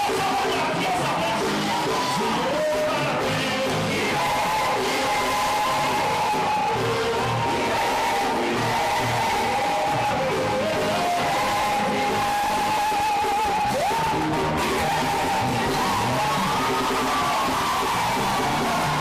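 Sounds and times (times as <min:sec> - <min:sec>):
live praise band music: 0:00.0 - 0:19.0.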